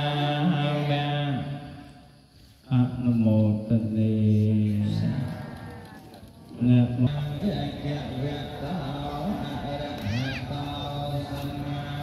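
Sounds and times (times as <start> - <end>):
murmur of low voices: 4.0 - 12.0.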